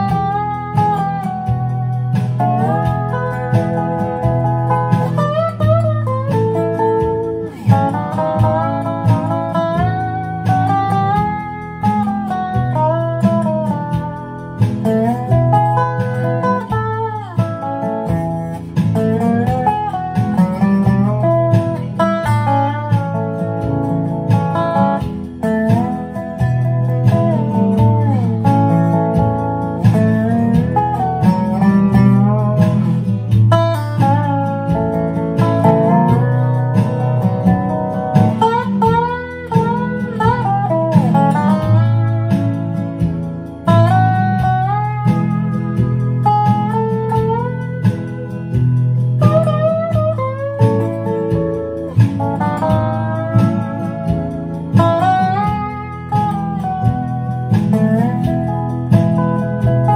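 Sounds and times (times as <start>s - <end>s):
resonator guitar slide melody: 0.0s - 59.9s.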